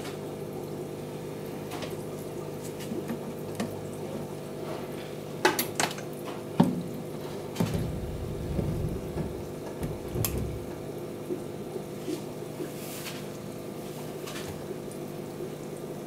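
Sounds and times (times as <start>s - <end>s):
aquarium filter bubbling: 0.0s - 16.0s
steady electric hum: 0.0s - 16.0s
low rumble: 7.6s - 10.9s
sharp knocks: 7.6s - 10.9s.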